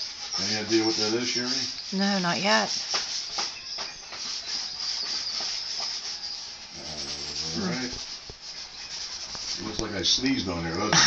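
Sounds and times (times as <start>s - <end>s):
chalk scraping on paper: 0.0s - 11.0s.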